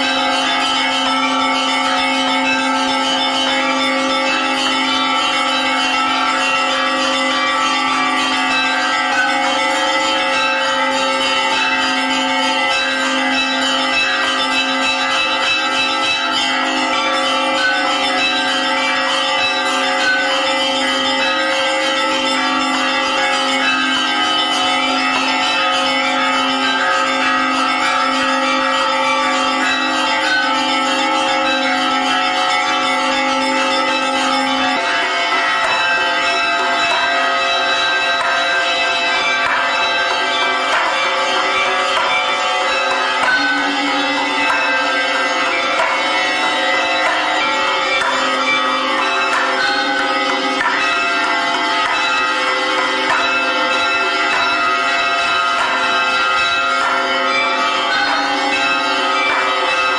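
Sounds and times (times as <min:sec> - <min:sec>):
church bells ringing: 0:00.0 - 0:59.9.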